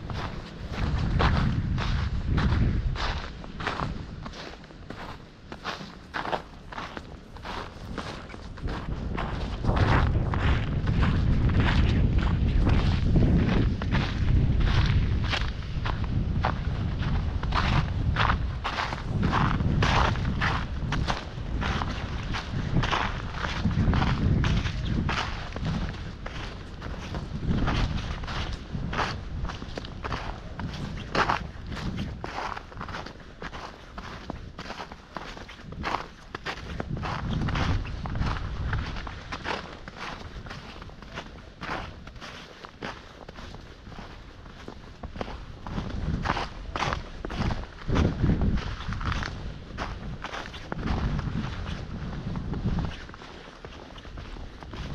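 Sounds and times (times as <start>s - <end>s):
footsteps crunching in snow: 0.0s - 54.9s
low rumble: 8.0s - 30.6s.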